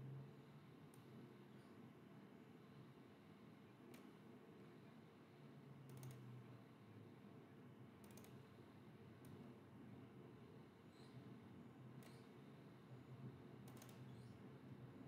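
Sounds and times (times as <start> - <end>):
computer mouse clicks: 5.9 - 6.3, 8.0 - 8.4, 12.0 - 12.3, 13.6 - 14.3.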